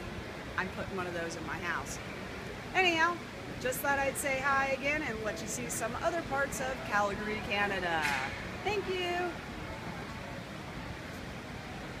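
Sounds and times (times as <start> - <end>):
indoor mall background noise: 0.0 - 12.0.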